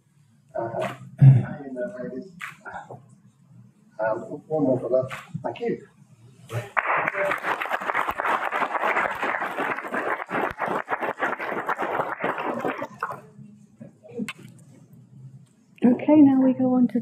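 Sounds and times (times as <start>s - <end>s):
audience applauding: 6.6s - 13.2s.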